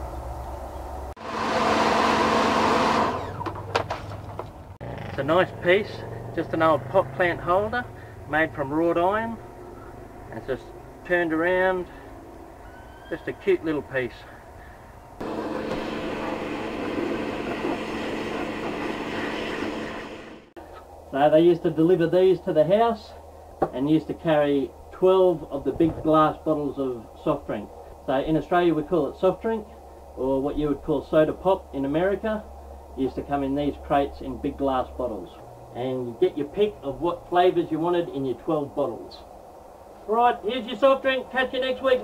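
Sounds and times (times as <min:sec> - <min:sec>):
pressure washer motor hum: 0:01.2 - 0:03.6, 0:15.2 - 0:20.5
pressure washer spraying water: 0:15.2 - 0:20.4.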